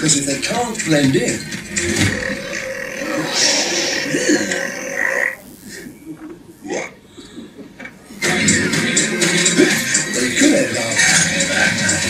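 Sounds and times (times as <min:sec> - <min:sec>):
comic vocal noises: 0:01.7 - 0:06.0.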